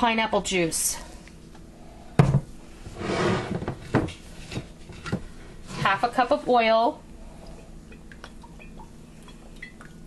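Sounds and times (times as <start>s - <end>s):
objects knocking on countertop: 2.2s - 2.5s.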